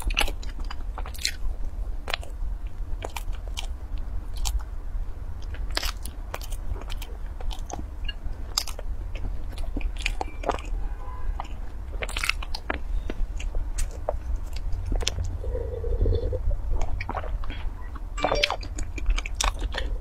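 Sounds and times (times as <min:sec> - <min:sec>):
person chewing crunchy food: 0:00.0 - 0:20.0
steady low hum: 0:00.0 - 0:20.0.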